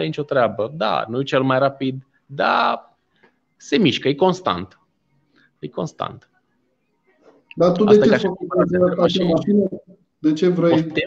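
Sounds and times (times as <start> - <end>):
man speaking: 7.5 - 11.0.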